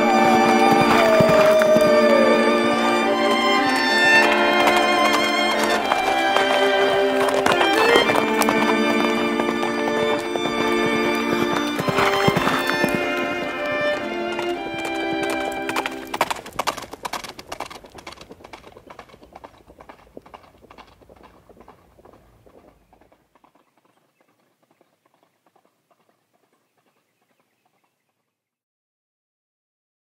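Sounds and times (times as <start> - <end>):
horse hoofbeats clip-clop: 0.0 - 28.4
music holding a chord: 2.2 - 16.1.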